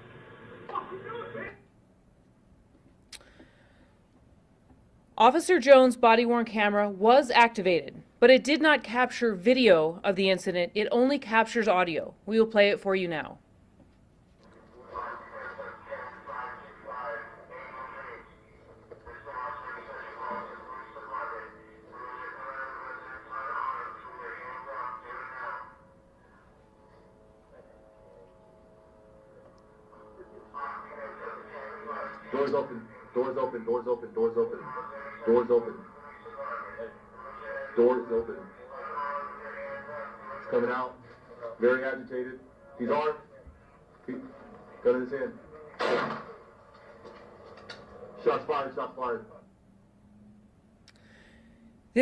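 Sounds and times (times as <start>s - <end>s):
indistinct voices over speakers: 14.4s - 49.5s.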